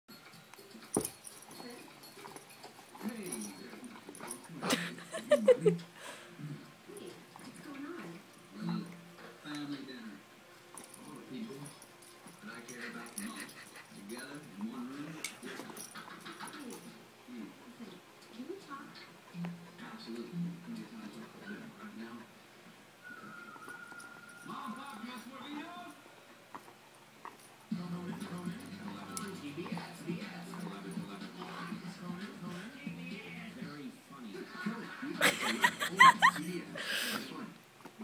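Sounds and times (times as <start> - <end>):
dog whining: 23.1 - 24.8.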